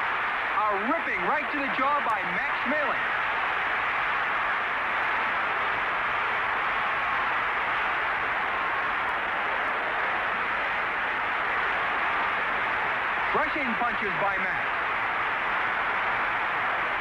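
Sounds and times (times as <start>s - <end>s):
arena crowd roar: 0.0s - 17.0s.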